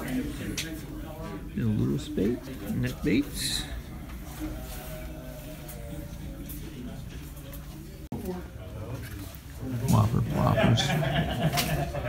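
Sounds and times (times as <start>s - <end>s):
murmur of voices: 0.0s - 12.0s
man talking: 9.8s - 11.0s.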